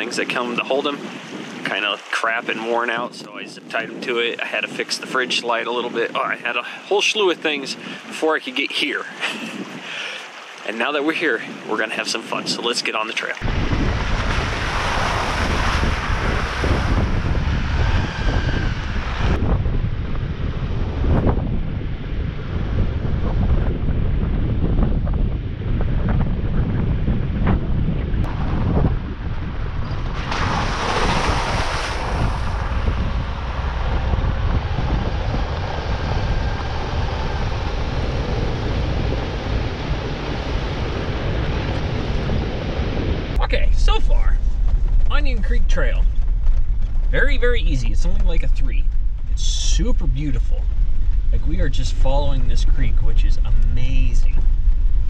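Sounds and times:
wind rumbling on microphone: 0.0s - 55.0s
tyres on dirt track: 13.4s - 22.6s, 28.2s - 55.0s.

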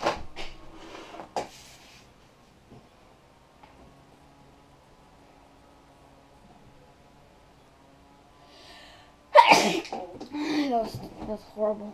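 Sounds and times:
child sneezing: 9.4s - 10.0s.

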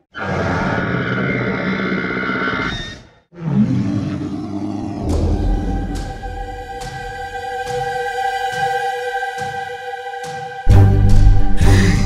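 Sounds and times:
dramatic roaring sound effects: 3.3s - 7.0s
eerie background music: 4.3s - 12.0s.

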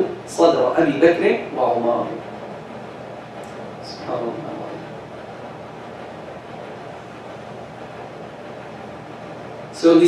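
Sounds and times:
room hiss and hum: 0.0s - 10.0s.

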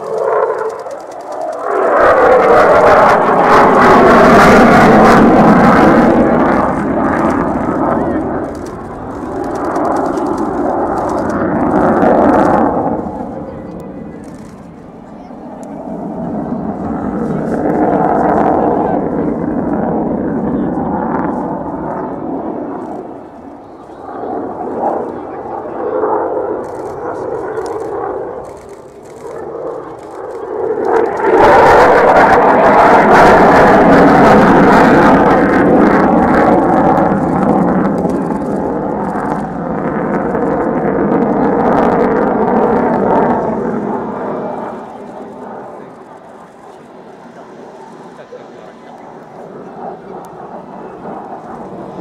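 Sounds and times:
jet flypast rumble: 0.0s - 52.0s.

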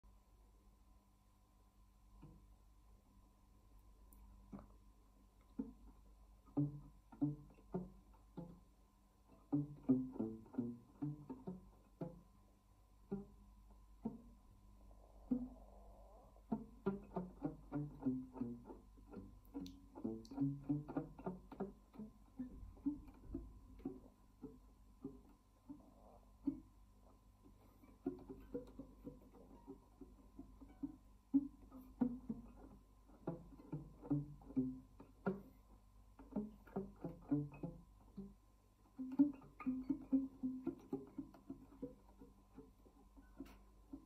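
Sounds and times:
classical guitar fingerstyle: 2.1s - 2.5s, 4.1s - 44.0s.

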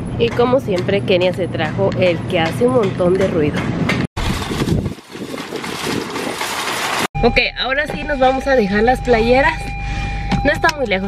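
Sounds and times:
shopping cart rattling on asphalt: 4.2s - 7.1s.

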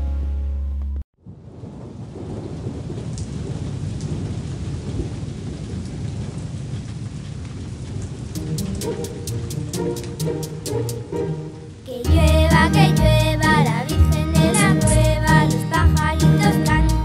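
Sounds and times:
steady rainfall: 1.2s - 17.0s
children's song: 11.8s - 17.0s.

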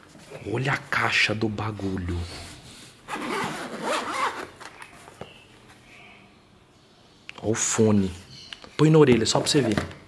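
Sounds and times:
zipper being pulled open: 3.1s - 4.6s.

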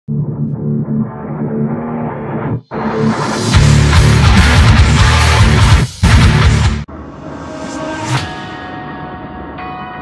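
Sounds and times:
background music with guitar: 0.1s - 6.9s.

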